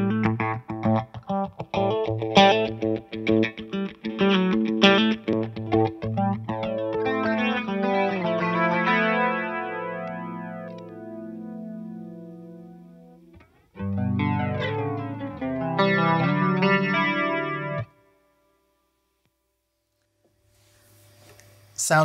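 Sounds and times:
overdriven electric guitar chords: 0:00.0 - 0:18.4.

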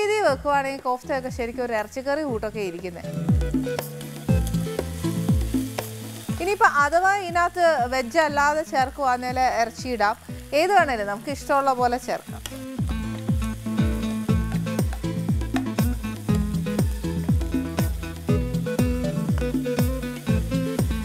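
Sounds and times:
background music with steady beat: 0:00.0 - 0:21.0
vegetables sizzling in a pan: 0:00.0 - 0:21.0.

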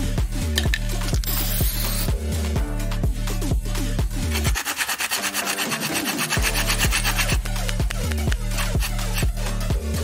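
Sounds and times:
abrasive pad scrubbing metal can: 0:04.3 - 0:09.6.

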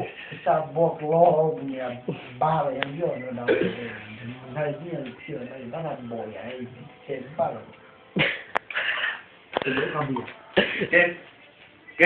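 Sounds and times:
person speaking: 0:00.0 - 0:07.8.

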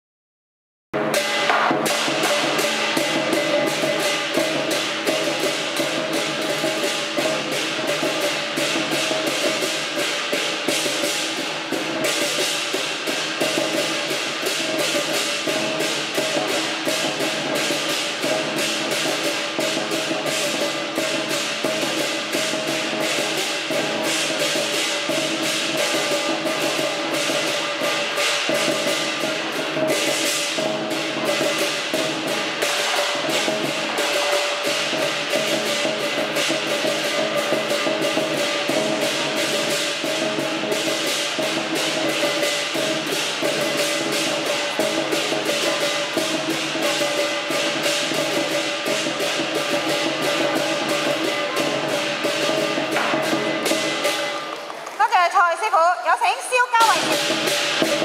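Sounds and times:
lion dance drum cymbals and gong: 0:01.0 - 0:58.0.

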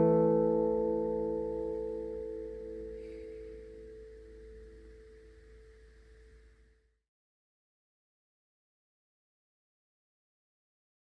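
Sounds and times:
acoustic guitar chord ringing: 0:00.0 - 0:05.9.

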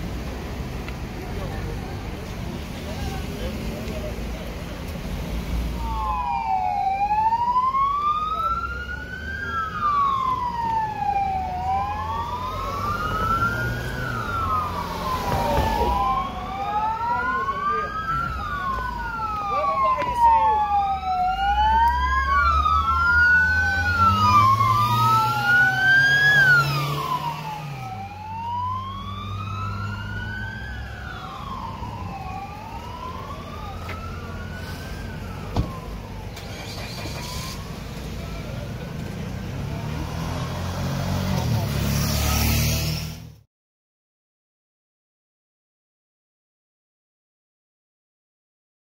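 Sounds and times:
police sirens wailing: 0:02.5 - 0:42.8
vehicle engine revving: 0:22.6 - 0:28.0, 0:36.4 - 0:43.4.

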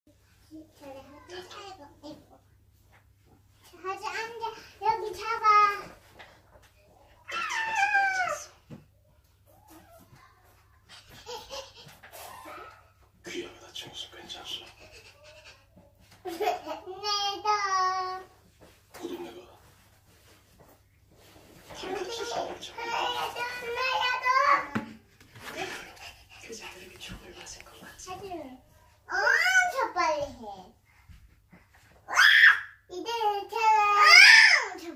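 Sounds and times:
toddlers' high-pitched voices: 0:06.9 - 0:08.7, 0:09.4 - 0:13.0, 0:21.8 - 0:25.0, 0:28.1 - 0:30.8, 0:32.0 - 0:34.9
toddlers squealing and babbling: 0:07.2 - 0:08.6, 0:12.1 - 0:13.0, 0:32.0 - 0:32.9.

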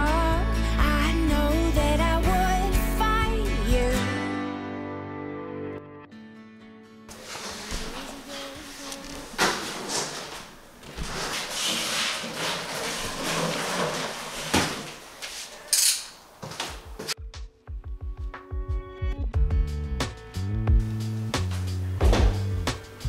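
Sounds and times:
background music: 0:00.0 - 0:07.7, 0:17.1 - 0:23.0
cardboard and plastic rustling: 0:07.1 - 0:15.7.

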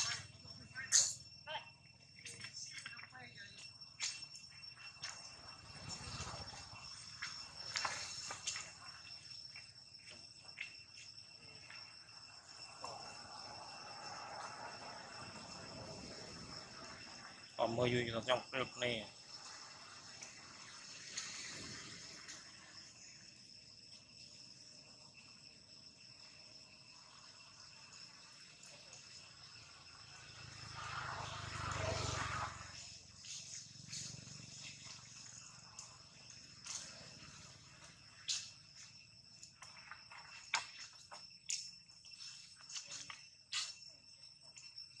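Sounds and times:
crickets or cicadas droning: 0:00.0 - 0:45.0.

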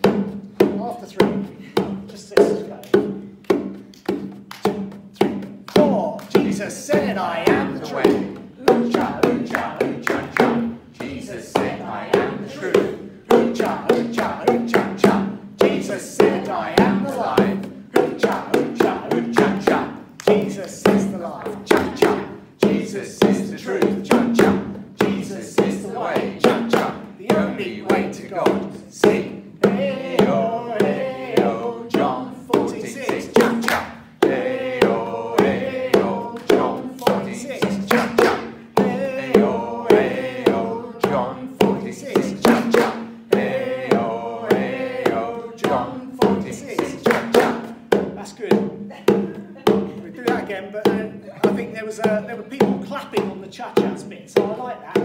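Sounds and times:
bongos played by hand: 0:00.0 - 0:55.0
group singing upbeat chant-like song: 0:01.1 - 0:55.0.

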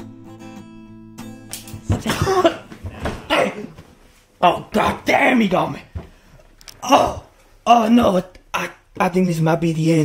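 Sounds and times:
man coughing: 0:01.9 - 0:03.8.

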